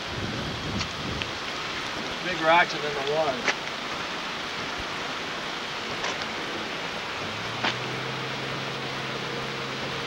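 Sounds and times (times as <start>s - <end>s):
rain and wind hiss: 0.0s - 10.0s.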